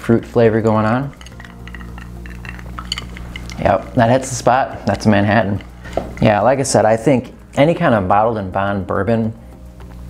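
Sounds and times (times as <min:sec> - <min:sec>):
low hum: 0:01.0 - 0:07.6
ice clinking in a glass: 0:01.1 - 0:04.0.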